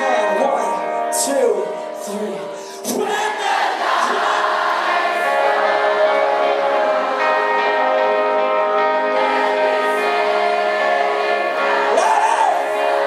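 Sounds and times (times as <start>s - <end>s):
crowd singing: 0.0s - 13.0s
rock band playing: 4.3s - 13.0s.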